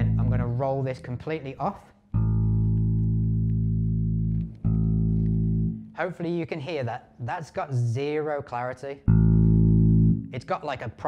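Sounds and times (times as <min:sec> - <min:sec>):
bass guitar low note: 0:00.0 - 0:01.0, 0:02.2 - 0:06.0, 0:09.1 - 0:10.4.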